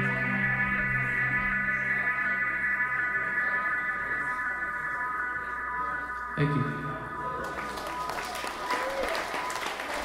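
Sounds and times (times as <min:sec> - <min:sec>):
ambient electronic drone: 0:00.0 - 0:10.0.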